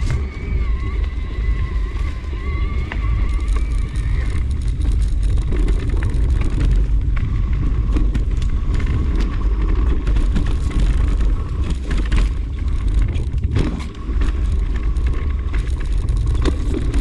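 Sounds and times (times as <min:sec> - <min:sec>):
wavering whine: 0:00.0 - 0:17.0
wind rumble on microphone: 0:00.0 - 0:17.0.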